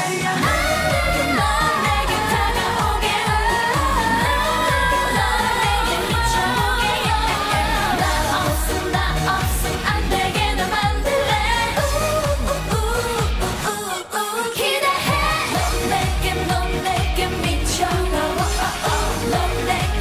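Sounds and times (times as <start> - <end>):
female group pop song: 0.0 - 20.0.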